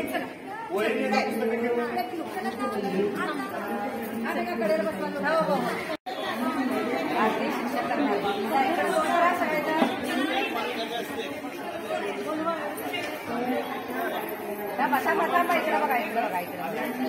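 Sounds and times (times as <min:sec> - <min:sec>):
children and women chattering: 0:00.0 - 0:17.0.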